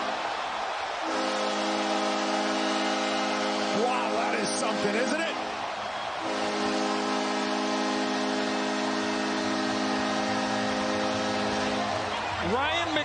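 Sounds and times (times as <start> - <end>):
crowd cheering: 0.0 - 13.0
arena horn blast: 1.0 - 12.8.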